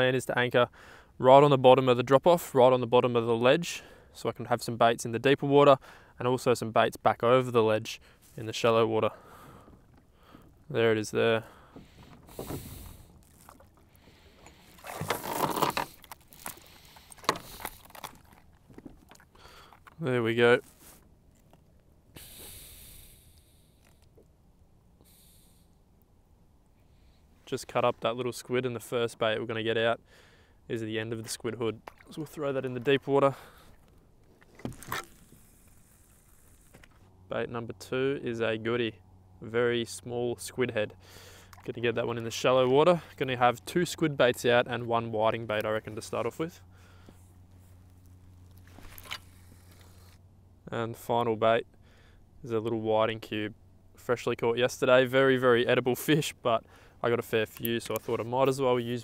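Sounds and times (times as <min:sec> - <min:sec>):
steady low hum: 0:05.8 - 0:59.0
rod and reel handling: 0:11.7 - 0:21.8, 0:31.8 - 0:37.1, 0:47.0 - 0:50.2
soft hissing: 0:22.2 - 0:24.1.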